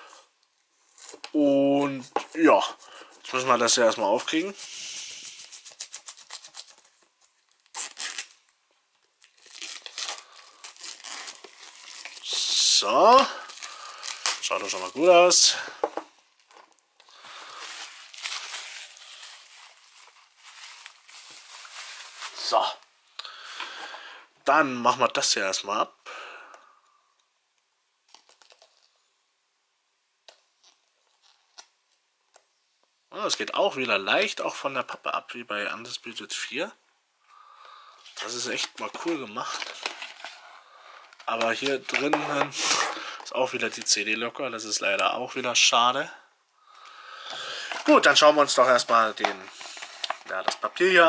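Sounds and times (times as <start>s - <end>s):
plastic wrap crinkling and tearing: 4.2s - 15.7s, 16.3s - 22.8s, 28.1s - 28.9s, 38.1s - 44.0s, 47.3s - 51.0s.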